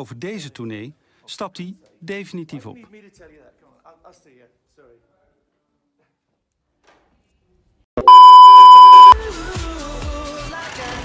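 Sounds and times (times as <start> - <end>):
high-pitched test tone: 8.0 - 9.2
pop music: 9.1 - 11.0.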